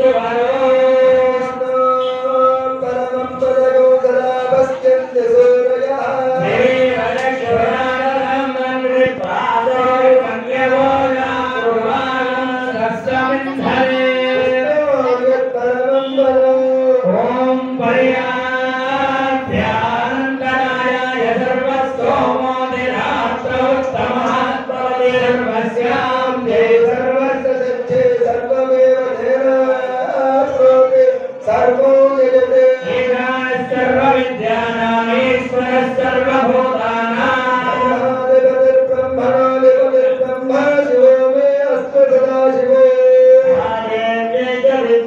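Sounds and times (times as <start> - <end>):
person chanting mantras: 0.0 - 45.0.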